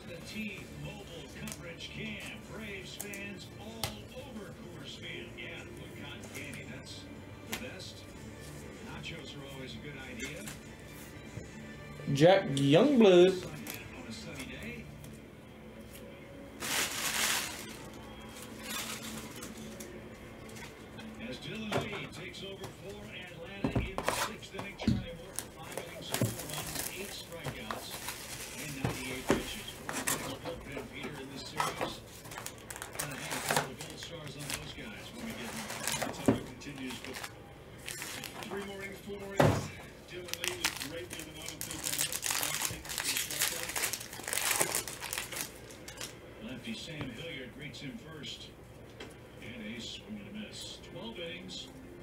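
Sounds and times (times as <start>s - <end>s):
foil wrappers crinkling and tearing: 0.1s - 5.2s, 13.4s - 15.2s, 15.9s - 20.7s, 25.1s - 39.3s, 40.1s - 46.2s.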